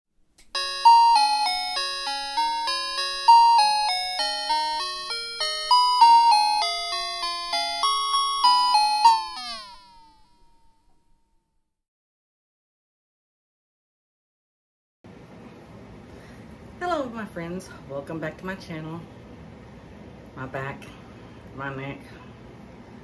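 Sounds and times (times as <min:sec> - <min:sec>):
bell-like jingle melody: 0:00.6 - 0:10.8.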